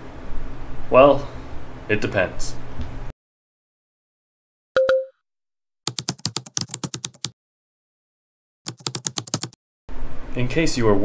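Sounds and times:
computer keyboard typing: 0:05.9 - 0:07.4, 0:08.7 - 0:09.6.

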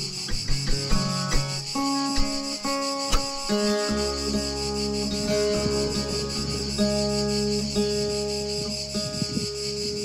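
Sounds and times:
cicadas chorus: 0:00.0 - 0:10.0
fingerstyle acoustic guitar: 0:00.0 - 0:10.0.

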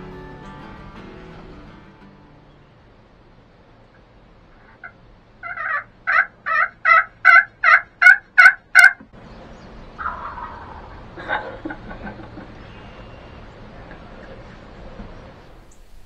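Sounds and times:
turkey yelps: 0:04.6 - 0:09.0, 0:10.0 - 0:11.4.

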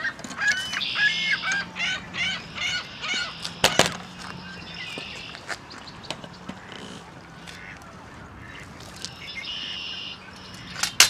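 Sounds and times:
waterfowl calling: 0:00.0 - 0:11.0.

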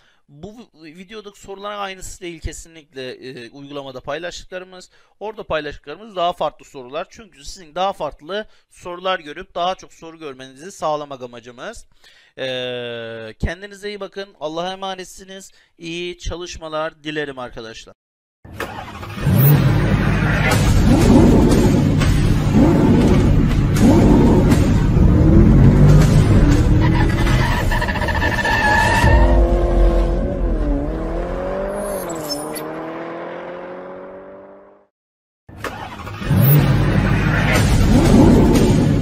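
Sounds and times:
car engine revving: 0:18.6 - 0:34.8, 0:35.6 - 0:39.0.

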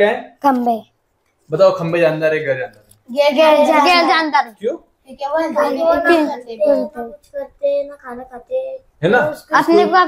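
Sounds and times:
children's voices answering: 0:03.1 - 0:10.0.

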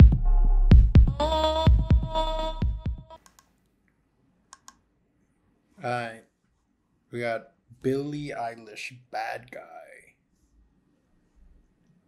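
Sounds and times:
faint sharp clicks: 0:03.2 - 0:03.5, 0:04.5 - 0:04.8.

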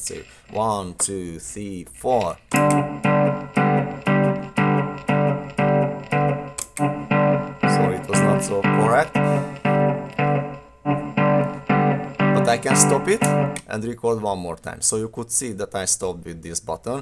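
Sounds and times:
electric guitar riff: 0:02.5 - 0:13.7.

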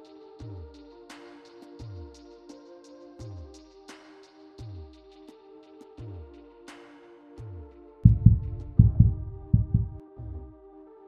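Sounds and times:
heavy bass hits: 0:08.1 - 0:10.0
sliding deep bass notes: 0:08.1 - 0:10.5.

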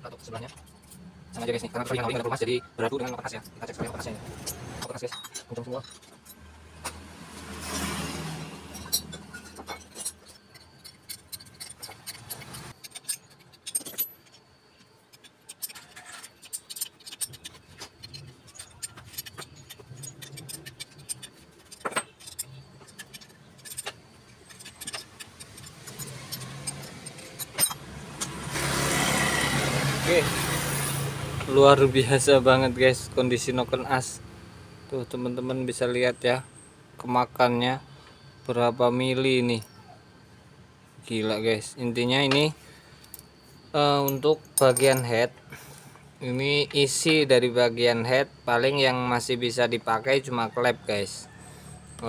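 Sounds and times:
hand tools clinking on metal: 0:00.1 - 0:08.0, 0:08.6 - 0:28.4, 0:42.0 - 0:45.6
motor vehicle running: 0:17.3 - 0:34.9.

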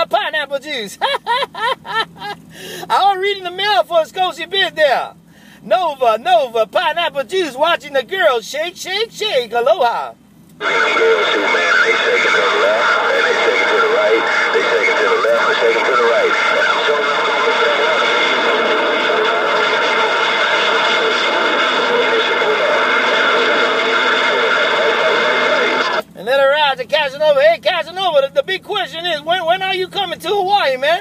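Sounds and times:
whistling radio tones: 0:10.6 - 0:26.1
radio static hiss: 0:10.6 - 0:29.4
garbled radio voices: 0:10.6 - 0:31.0.

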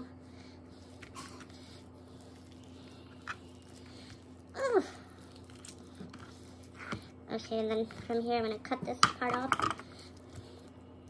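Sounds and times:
low steady hum: 0:00.0 - 0:11.0
wet squishing of chicken skin: 0:01.6 - 0:06.7.

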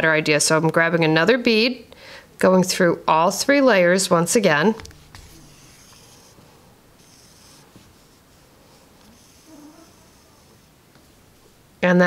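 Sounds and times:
thread rasping through felt: 0:04.8 - 0:11.7.

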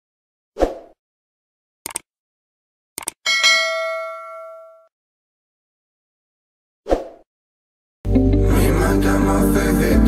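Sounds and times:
quick clicks: 0:01.8 - 0:02.1, 0:03.0 - 0:03.2
notification bell ding: 0:03.3 - 0:04.9.

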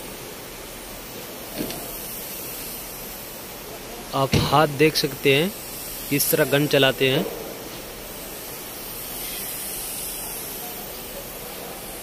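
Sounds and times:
spray gun hissing: 0:00.0 - 0:12.0.

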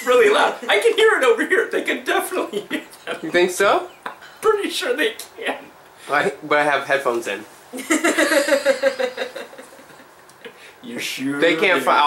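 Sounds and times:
person laughing: 0:07.8 - 0:10.1.

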